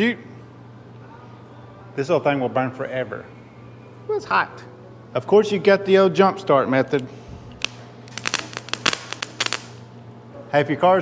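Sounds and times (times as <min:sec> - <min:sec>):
jumper cable clamps sparking: 0:06.9 - 0:09.9.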